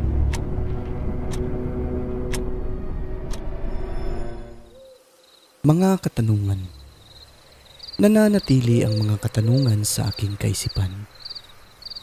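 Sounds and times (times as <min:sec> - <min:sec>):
sharp tick: 0:00.2 - 0:00.5, 0:01.3 - 0:01.5, 0:02.3 - 0:02.5.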